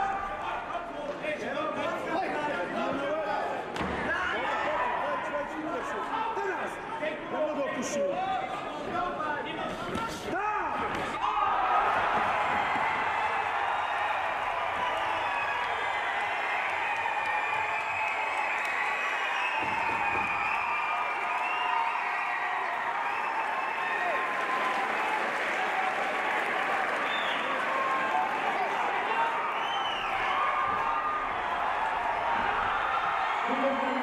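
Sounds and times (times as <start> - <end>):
crowd cheering and shouting: 0.0 - 0.9, 2.2 - 7.7, 10.3 - 34.0
crowd applauding: 11.4 - 34.0.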